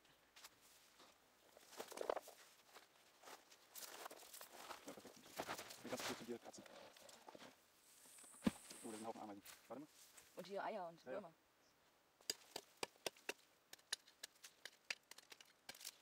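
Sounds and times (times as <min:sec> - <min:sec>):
dry stalks rustling: 0:00.4 - 0:10.5, 0:12.3 - 0:16.0.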